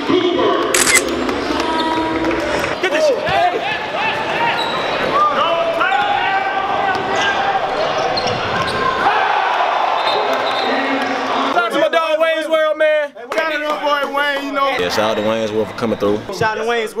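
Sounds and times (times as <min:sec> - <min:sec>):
crowd voices and shouts: 0:00.0 - 0:17.0.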